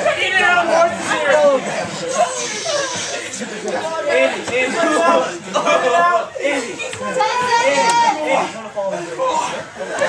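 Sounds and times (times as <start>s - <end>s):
young men shouting and cheering: 0.0s - 10.0s.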